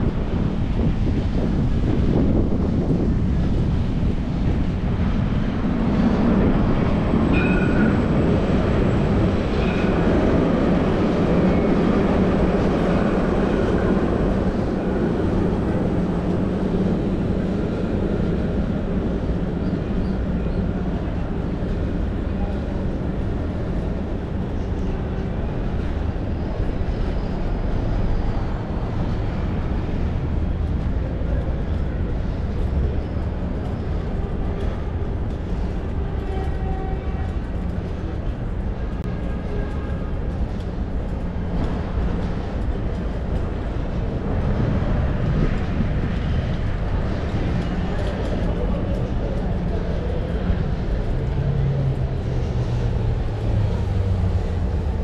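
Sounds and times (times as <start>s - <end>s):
tram rumbling past: 0.0s - 55.0s.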